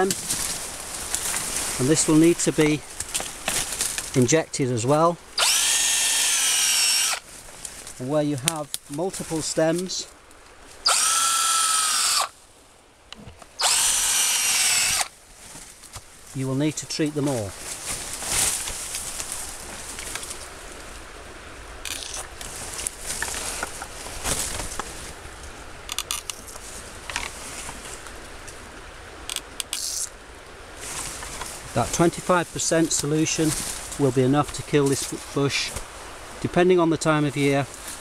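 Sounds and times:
injection tool rasp: 5.4s - 7.2s, 10.9s - 12.3s, 13.6s - 15.1s
power drill boring into wood: 5.4s - 7.2s, 10.9s - 12.3s, 13.6s - 15.1s.

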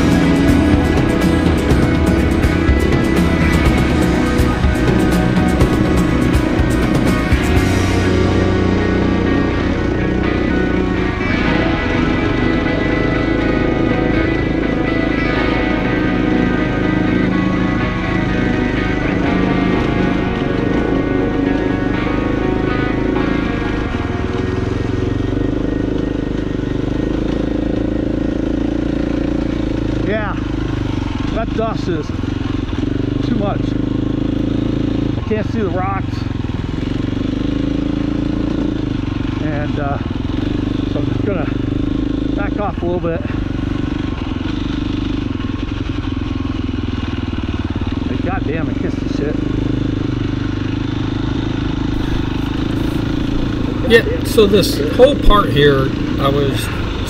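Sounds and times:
background music: 0.0s - 30.8s, 49.1s - 57.0s
dirt bike engine running: 0.0s - 57.0s.

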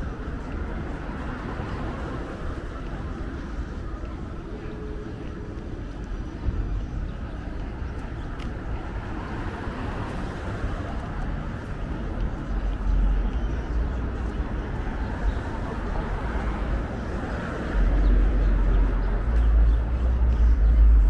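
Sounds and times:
traffic rumble: 0.0s - 21.0s.

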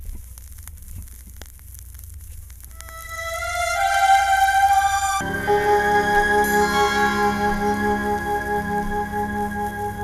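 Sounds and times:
record surface crackle: 0.0s - 10.0s.

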